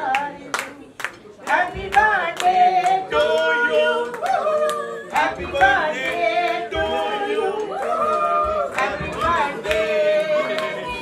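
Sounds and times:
people clapping along: 0:00.0 - 0:11.0.

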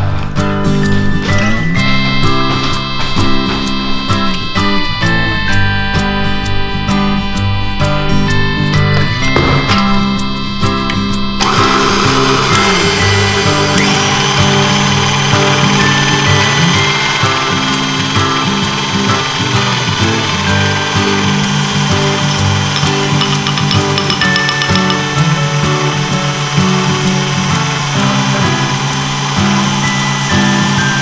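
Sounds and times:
background music: 0:00.0 - 0:31.0
electric stand mixer whisking: 0:11.4 - 0:31.0.

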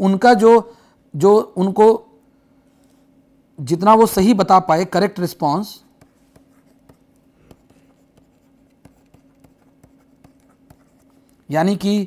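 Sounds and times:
low electrical hum: 0:00.0 - 0:12.0
stylus scratching on pen tablet: 0:05.9 - 0:11.5.

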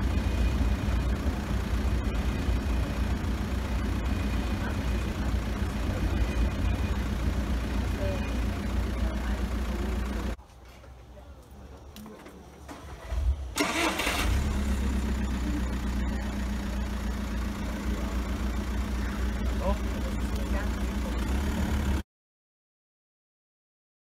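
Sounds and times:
car engine idling: 0:00.0 - 0:10.4, 0:12.6 - 0:22.0.

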